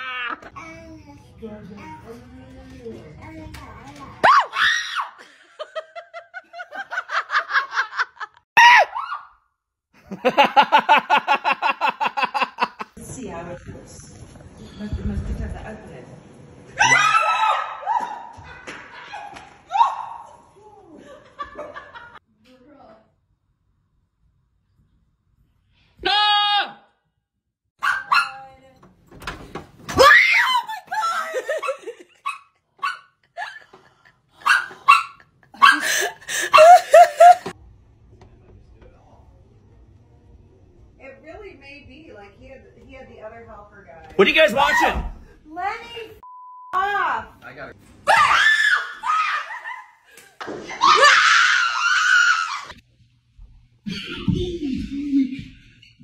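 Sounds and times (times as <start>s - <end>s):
person screaming in fright: 8.6s - 9.2s, 50.8s - 52.7s
woman laughing: 30.7s - 32.4s, 33.2s - 37.5s.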